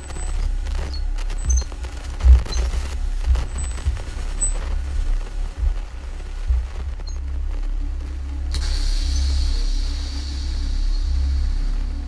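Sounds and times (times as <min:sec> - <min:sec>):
deep bass drone: 0:00.0 - 0:12.0.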